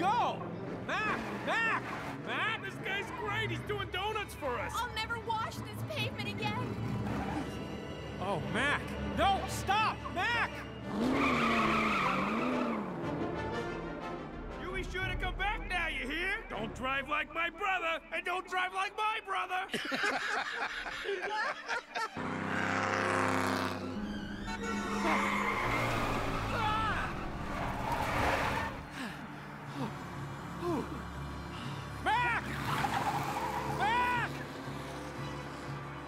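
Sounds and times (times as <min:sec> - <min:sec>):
truck tyres squealing: 0:00.0 - 0:04.9, 0:06.6 - 0:08.0, 0:10.0 - 0:13.0, 0:22.2 - 0:36.0
background music: 0:00.0 - 0:36.0
truck rumble: 0:22.2 - 0:36.0.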